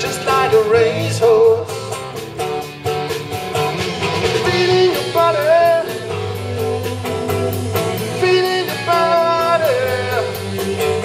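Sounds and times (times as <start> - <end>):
bass guitar: 0.0 - 11.0
drum kit: 0.0 - 11.0
electric guitar with bent notes: 0.0 - 11.0.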